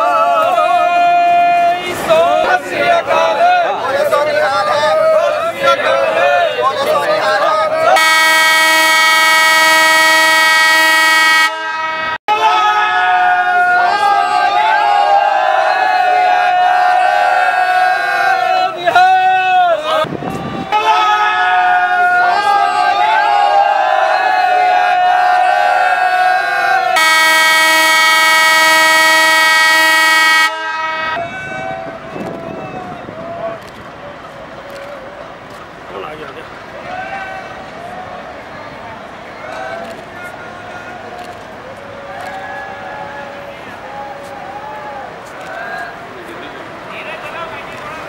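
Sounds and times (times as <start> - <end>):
voices: 0.0 - 9.6, 12.3 - 29.0, 30.4 - 48.0
locomotive horn blast: 7.9 - 14.6, 26.6 - 31.8.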